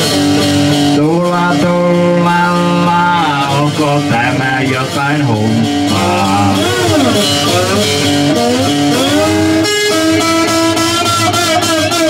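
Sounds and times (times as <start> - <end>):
slide guitar blues: 0.0 - 12.0.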